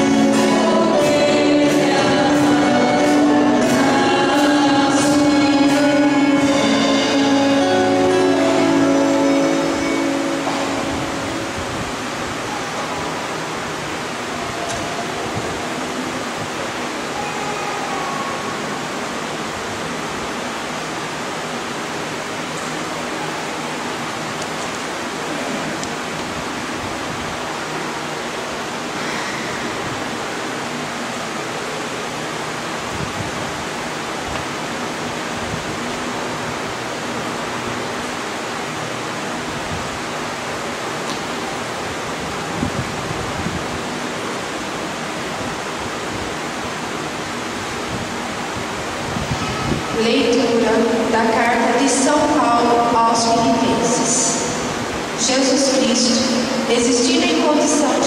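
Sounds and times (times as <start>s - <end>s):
steady background hiss: 0.0s - 58.0s.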